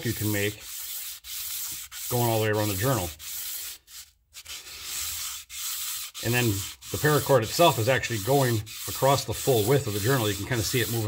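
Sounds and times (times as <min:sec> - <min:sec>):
emery cloth rasping on metal: 0:00.0 - 0:11.0.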